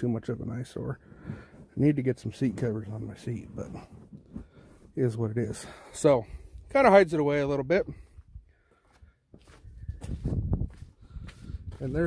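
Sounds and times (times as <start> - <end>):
low shuffling footsteps: 0.4 - 5.7, 7.9 - 12.0.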